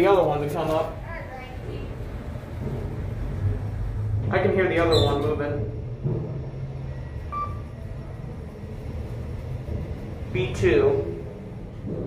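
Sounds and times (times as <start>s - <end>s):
elevator car low rumble: 0.0s - 12.0s.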